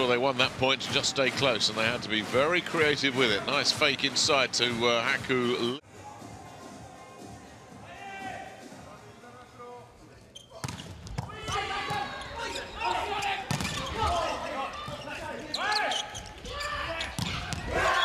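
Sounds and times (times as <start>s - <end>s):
sneakers squeaking on court: 10.3s - 18.0s
players calling out: 11.2s - 18.0s.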